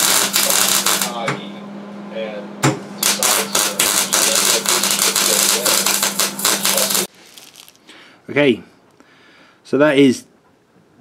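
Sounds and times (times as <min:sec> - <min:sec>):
welding arc crackling: 0:00.0 - 0:01.2, 0:03.0 - 0:07.8
steady electrical hum: 0:00.0 - 0:11.0.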